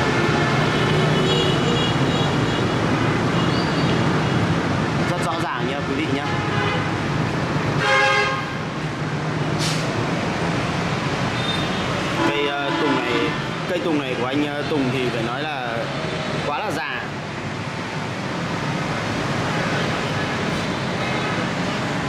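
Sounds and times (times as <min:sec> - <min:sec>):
road traffic hum: 0:00.0 - 0:22.0
vehicle horn tooting: 0:07.8 - 0:08.6, 0:11.4 - 0:13.5.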